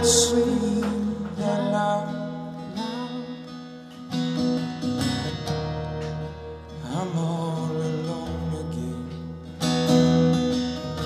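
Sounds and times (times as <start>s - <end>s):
person singing: 0.0s - 3.7s, 6.7s - 9.6s
acoustic guitar strumming: 0.0s - 11.0s.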